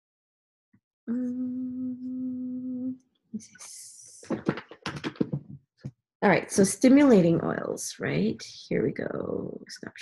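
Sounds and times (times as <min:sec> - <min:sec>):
woman humming: 0:01.1 - 0:03.0.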